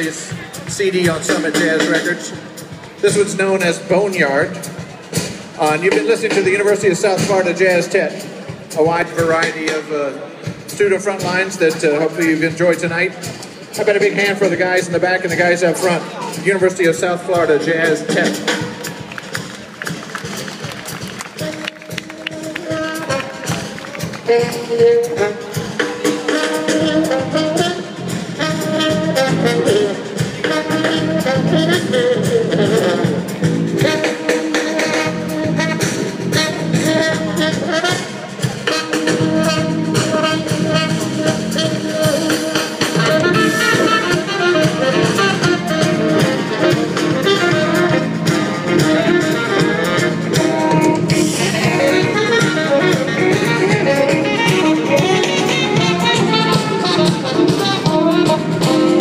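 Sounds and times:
jazz ensemble playing: 0.0 - 59.0.

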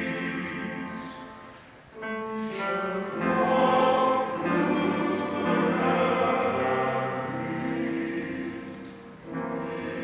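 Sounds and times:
men's choir singing: 3.1 - 8.7, 9.3 - 10.0.

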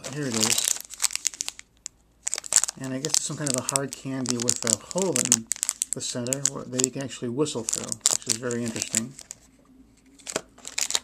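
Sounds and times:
plastic blister pack crinkling: 0.0 - 9.5, 10.2 - 11.0.

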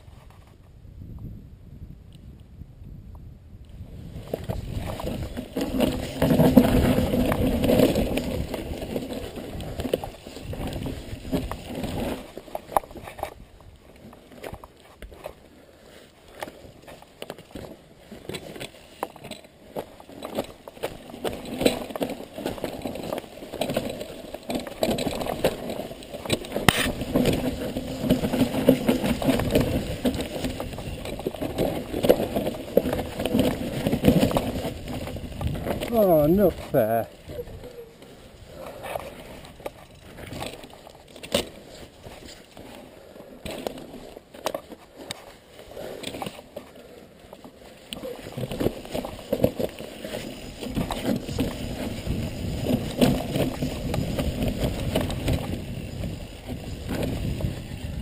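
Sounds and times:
bike tyres rolling on dirt: 0.0 - 58.0
bike rattling: 3.8 - 58.0
bike knocking over roots: 4.2 - 15.4, 16.3 - 58.0.

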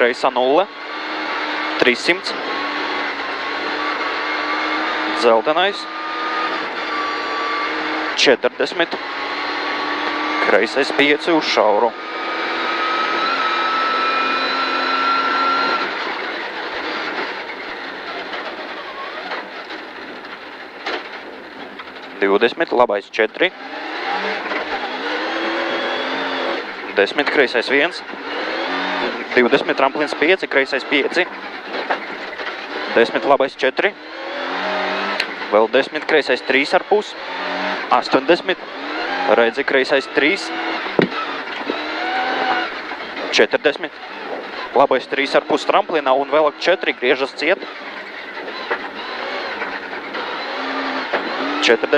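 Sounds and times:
rally car engine whining: 0.0 - 51.9
tyre and road noise: 0.0 - 51.9.

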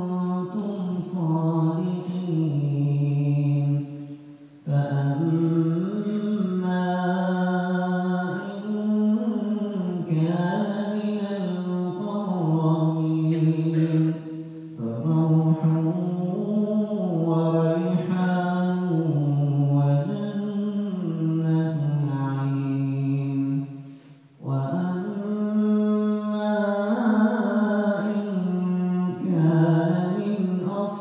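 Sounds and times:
man reciting melodically: 0.0 - 23.7, 24.4 - 31.0.

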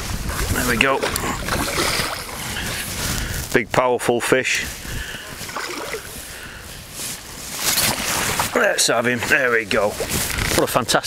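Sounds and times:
fish splashing in water: 0.3 - 2.7, 5.4 - 6.1, 7.6 - 8.6.

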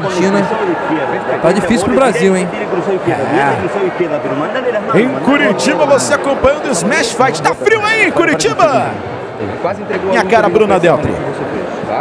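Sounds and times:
sports commentators talking: 0.0 - 12.0.

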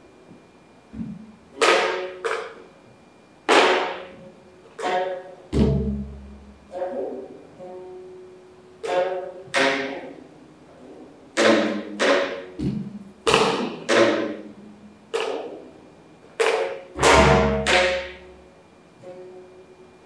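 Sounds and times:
stick knocking instrument body: 0.9 - 2.6, 3.5 - 7.0, 8.8 - 10.2, 11.4 - 14.5, 15.1 - 15.6, 16.4 - 18.4
plucked zither notes: 3.5 - 15.7, 16.4 - 19.7.

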